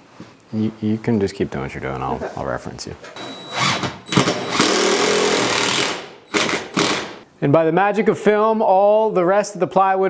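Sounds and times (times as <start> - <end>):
power screwdriver driving screws: 3.5 - 7.2.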